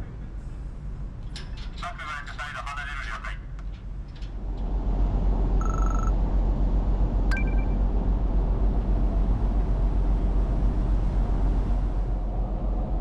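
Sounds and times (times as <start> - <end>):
ship engines rumbling: 0.0 - 13.0.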